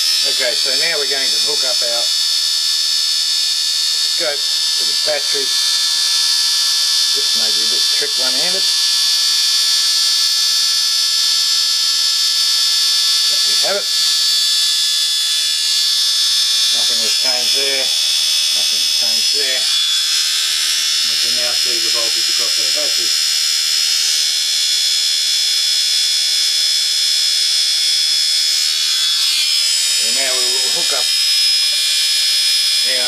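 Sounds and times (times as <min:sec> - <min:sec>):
small electric motor whining: 0:00.0 - 0:33.0
man's voice: 0:16.8 - 0:17.9.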